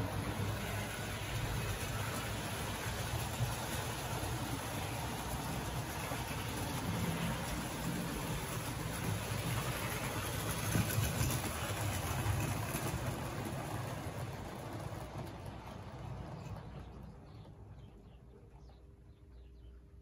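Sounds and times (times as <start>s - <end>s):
model train wheels on rails: 0.0s - 18.0s.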